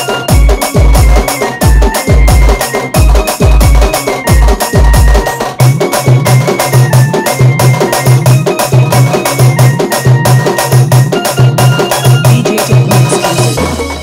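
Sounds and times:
fast drum pattern: 0.0s - 14.0s
sustained keyboard melody: 0.0s - 14.0s.

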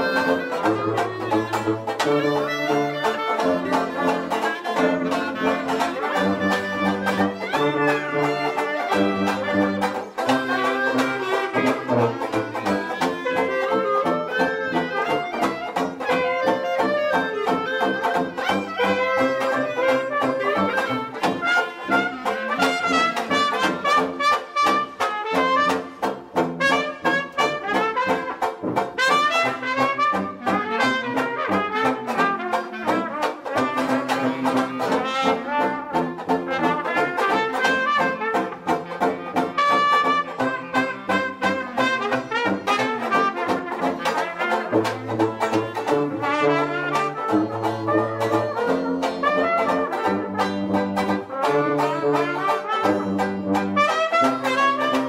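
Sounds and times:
banjo strumming: 0.0s - 55.0s
clarinet: 0.0s - 55.0s
trumpet: 0.0s - 55.0s
tuba bass line: 0.0s - 55.0s.

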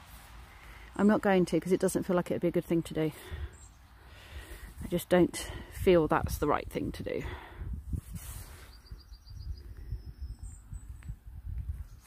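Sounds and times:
wind buffeting microphone: 4.3s - 12.0s.

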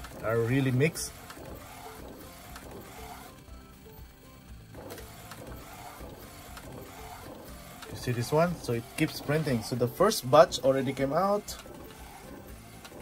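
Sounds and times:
printer carriage whirring: 0.0s - 13.0s.

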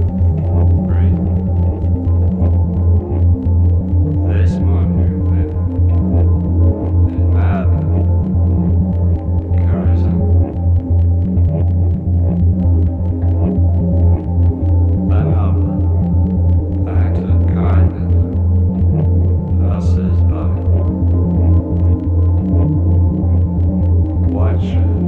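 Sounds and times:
fast faint ticking pulse: 0.0s - 25.0s
sustained synth tones: 0.0s - 25.0s
throbbing bass drone: 0.0s - 25.0s.

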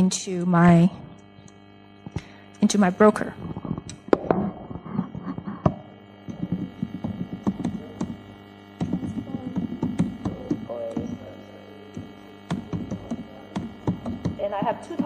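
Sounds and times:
electrical hum: 0.0s - 15.0s
laptop keyboard typing: 6.3s - 8.2s, 8.8s - 11.1s, 12.5s - 15.0s.

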